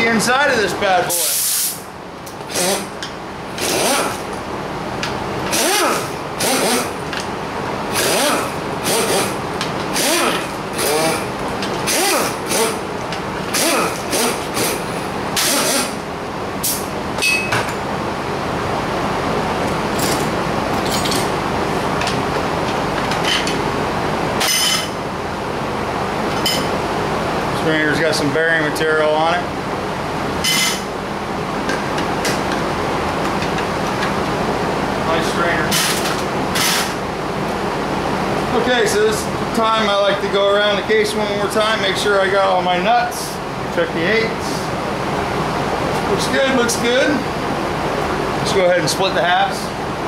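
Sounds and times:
steady background noise: 0.0 - 50.0
pneumatic tool bursts with hissing air: 1.1 - 1.8, 2.5 - 2.9, 3.6 - 4.2, 5.5 - 7.0, 7.9 - 11.2, 11.8 - 12.8, 13.5 - 16.0, 30.5 - 30.8, 35.7 - 37.0.

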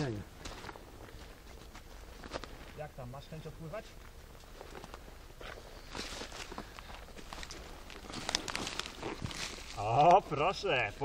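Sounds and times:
clothing and dry grass rustling: 0.0 - 11.0.

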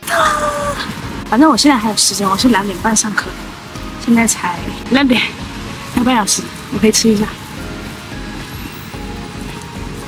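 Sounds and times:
background music with held notes: 0.3 - 10.0.

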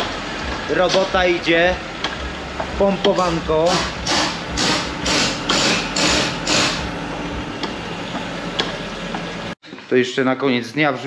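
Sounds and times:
workshop background noise: 0.0 - 11.0.

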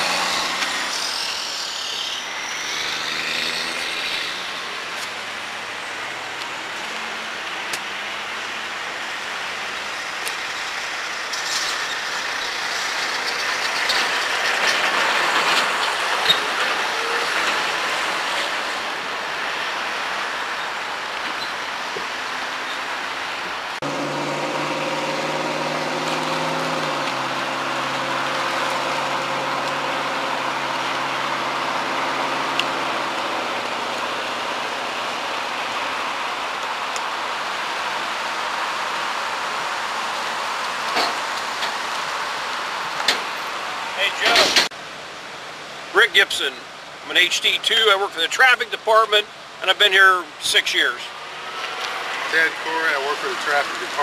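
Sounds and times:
vehicle passing: 0.0 - 6.3, 23.7 - 35.8
road traffic noise: 0.0 - 54.0.

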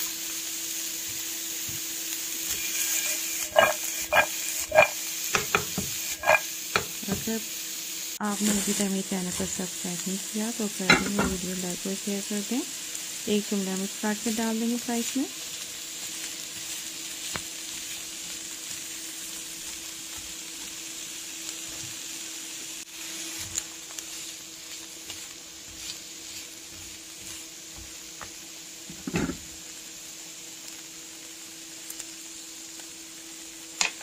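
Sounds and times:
peppers sizzling in a frying pan: 0.0 - 34.0
spatula knocking against pan: 3.6 - 7.3.

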